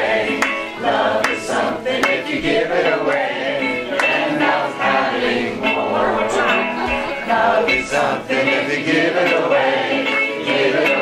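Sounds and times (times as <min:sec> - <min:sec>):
audience singing folk song: 0:00.0 - 0:11.0.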